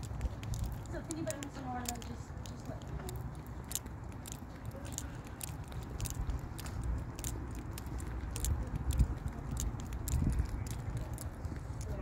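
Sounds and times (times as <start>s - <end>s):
footsteps on paved path: 0.0s - 12.0s
low microphone rumble: 0.0s - 12.0s.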